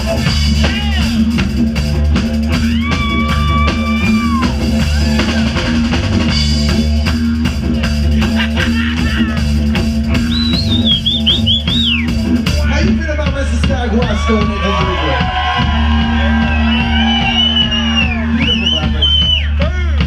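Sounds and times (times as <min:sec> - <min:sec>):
high lead guitar line: 0:00.0 - 0:19.3
live band instrumental groove: 0:00.0 - 0:20.0.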